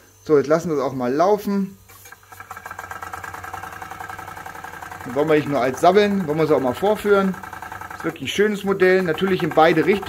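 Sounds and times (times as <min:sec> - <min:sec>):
toy steam engine chuffing: 0:01.8 - 0:10.0.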